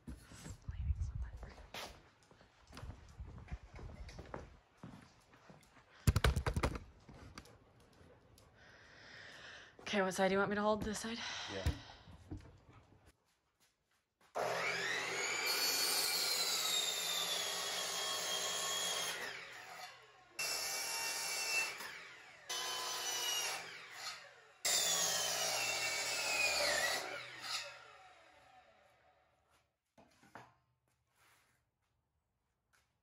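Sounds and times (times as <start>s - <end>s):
miter saw cutting wood: 14.4s - 29.0s.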